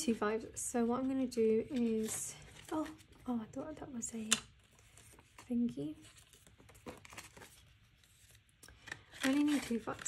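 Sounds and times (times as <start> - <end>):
banknotes crinkling and rustling: 0.8 - 3.5, 4.1 - 10.0.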